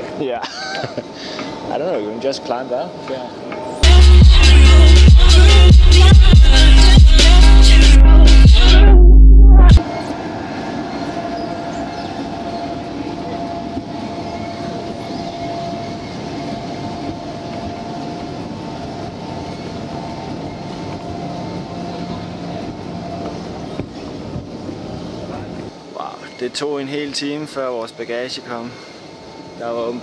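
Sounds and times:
machinery rumble with whine: 3.7s - 26.0s.

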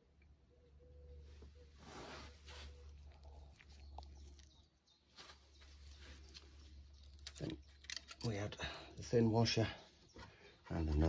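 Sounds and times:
faint handling rustles: 5.1s - 8.3s.

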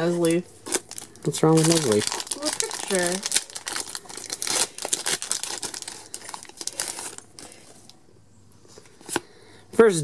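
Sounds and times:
foil wrapper crinkling: 0.0s - 8.0s.

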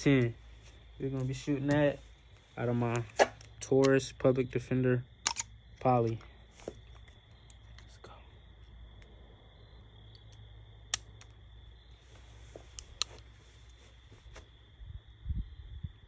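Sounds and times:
small ticks: 10.0s - 11.4s.

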